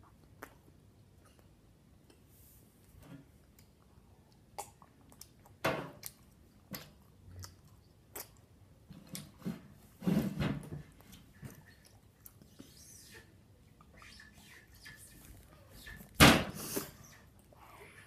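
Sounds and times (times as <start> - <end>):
person chewing gum: 0.0 - 2.3, 3.4 - 8.6, 11.3 - 12.9.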